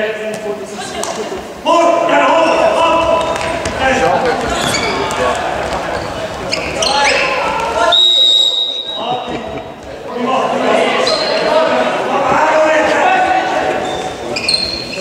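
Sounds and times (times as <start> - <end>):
players and spectators shouting: 1.6 - 9.3, 10.1 - 15.0
ball bouncing on court floor: 3.0 - 7.8
referee's whistle: 7.9 - 9.1.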